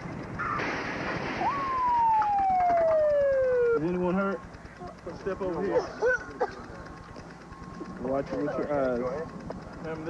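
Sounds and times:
police siren wailing: 1.4s - 4.0s.

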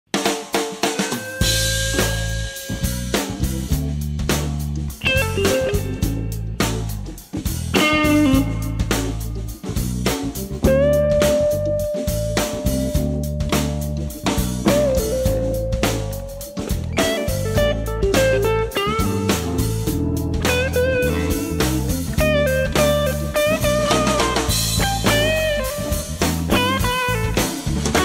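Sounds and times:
steady drum beat: 0.1s - 28.0s
electric guitar lead lines: 1.0s - 3.7s, 5.0s - 6.7s, 7.7s - 9.8s, 10.6s - 28.0s
bass notes: 1.4s - 28.0s.

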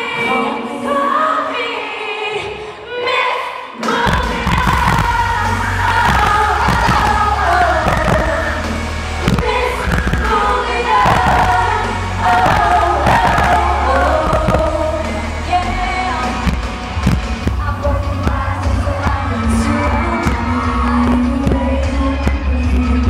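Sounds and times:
female vocal group singing: 0.0s - 16.6s, 17.5s - 23.0s
pop backing track with heavy bass: 3.9s - 23.0s.

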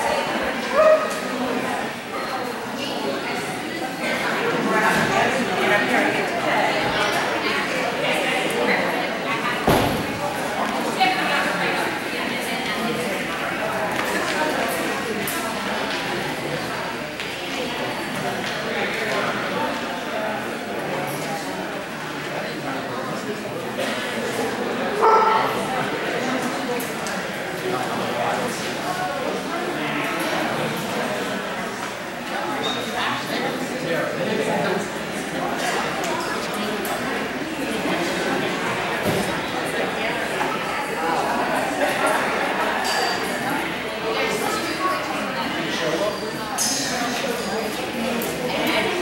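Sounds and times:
crowd chatter: 0.0s - 49.0s
dog yipping: 25.0s - 25.6s.

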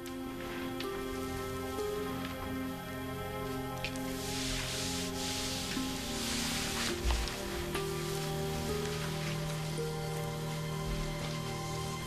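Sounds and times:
light hiss: 0.0s - 12.0s
soft background music score: 0.0s - 12.0s.

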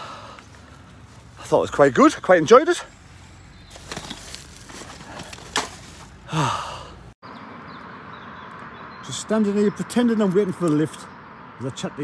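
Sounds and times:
distant road traffic hum: 0.0s - 12.0s
rustle of walking with backpack: 2.9s - 6.2s
man sighing: 6.2s - 7.1s.

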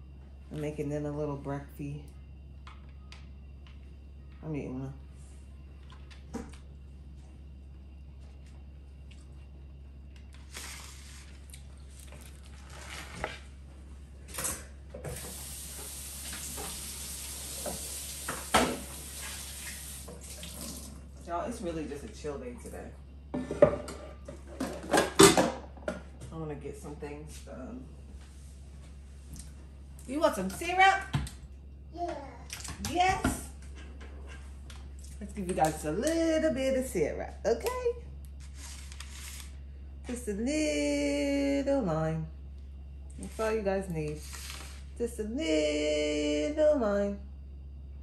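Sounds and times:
steady low hum: 0.0s - 17.6s, 19.8s - 48.0s
water running into sink: 15.0s - 21.2s.

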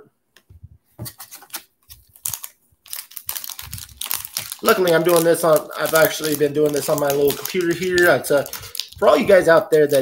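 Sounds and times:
foil wrapper crinkling: 1.1s - 10.0s.

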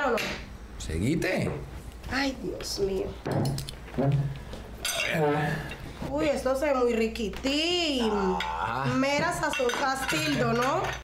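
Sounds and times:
cutlery clinking against plates: 4.8s - 5.2s, 9.2s - 11.0s.

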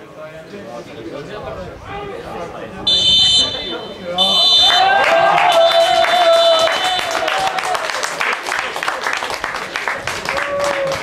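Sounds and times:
referee's whistle blasts: 2.9s - 7.0s.

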